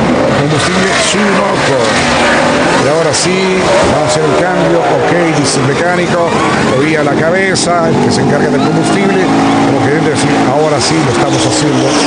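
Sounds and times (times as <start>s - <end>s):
race car engines: 0.0s - 12.0s.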